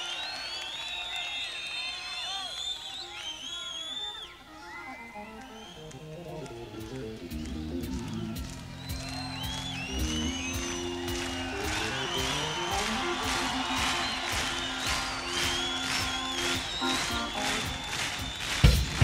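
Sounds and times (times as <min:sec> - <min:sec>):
low keyboard notes: 0:04.8 - 0:18.4.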